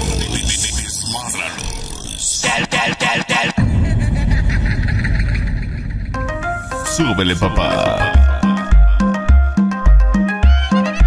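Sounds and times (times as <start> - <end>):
loud engine rumble: 0.0 - 2.4.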